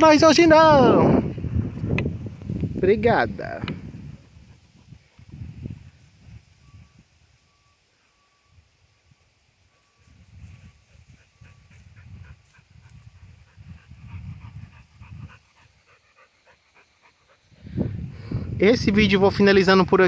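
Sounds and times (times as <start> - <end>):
dog panting: 4.0 - 5.5, 10.5 - 18.4.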